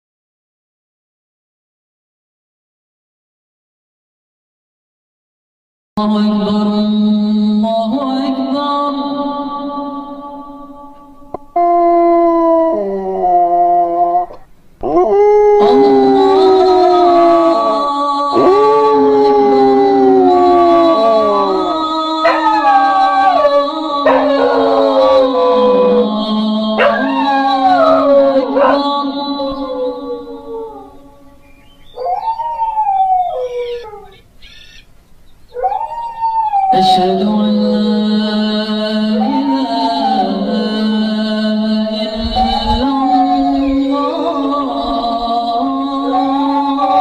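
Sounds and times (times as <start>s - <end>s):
dog howling: 11.6s - 34.2s, 35.5s - 36.8s, 39.2s - 40.8s, 42.2s - 47.0s.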